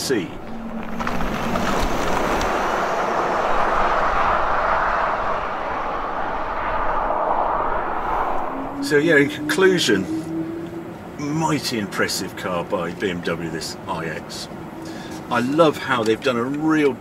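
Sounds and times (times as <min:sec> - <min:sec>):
car tyre and road noise: 0:00.0 - 0:17.0.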